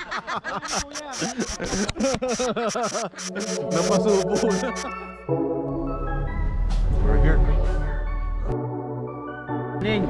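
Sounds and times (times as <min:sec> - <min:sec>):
person laughing hard: 0:00.0 - 0:03.5, 0:04.2 - 0:05.2.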